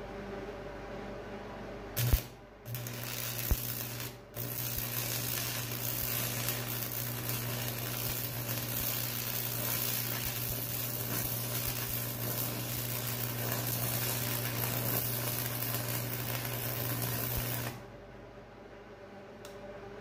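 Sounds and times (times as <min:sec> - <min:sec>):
low hum: 0:00.0 - 0:20.0
welding arc hissing: 0:02.0 - 0:17.8.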